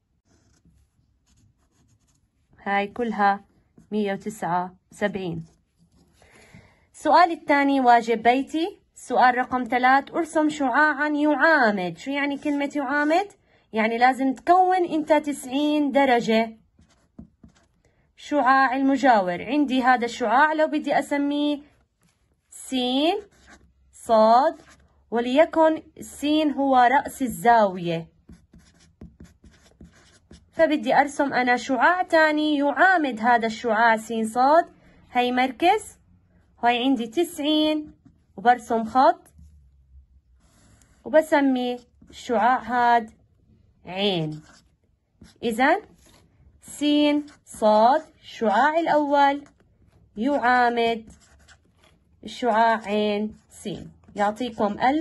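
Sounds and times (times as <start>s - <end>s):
marker scratching on paper: 0.0s - 6.3s, 9.2s - 17.9s, 19.7s - 31.7s, 36.8s - 39.6s, 40.3s - 43.2s, 43.9s - 55.0s.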